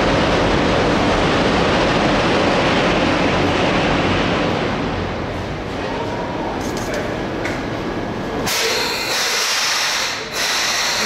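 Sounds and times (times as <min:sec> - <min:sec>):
train rumble: 0:00.0 - 0:11.0
train steady hiss: 0:08.5 - 0:11.0.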